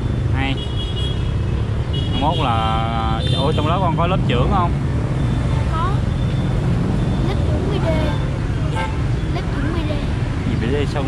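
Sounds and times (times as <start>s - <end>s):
low rumble of street traffic: 0.0s - 11.0s.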